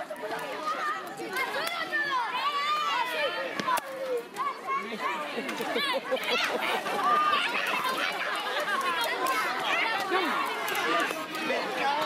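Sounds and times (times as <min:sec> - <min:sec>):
children shouting and chattering: 0:00.0 - 0:12.0.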